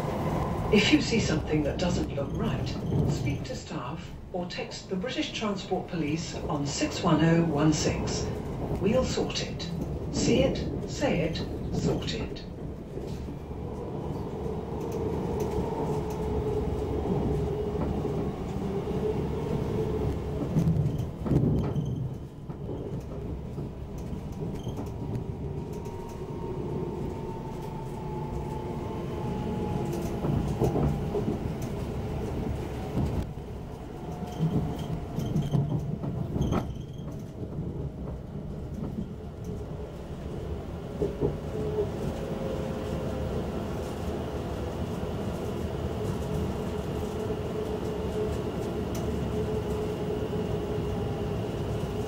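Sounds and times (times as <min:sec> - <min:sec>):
train wheels rumbling on track: 0:00.0 - 0:52.0.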